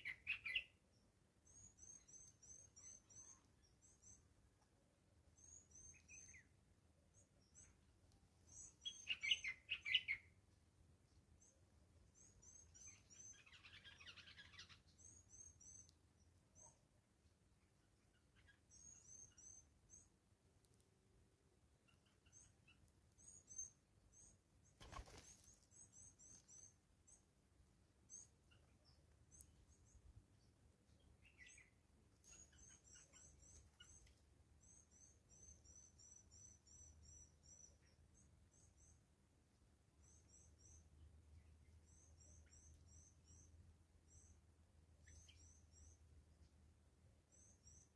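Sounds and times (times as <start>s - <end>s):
high-pitched bird chirps: 8.6s - 10.2s.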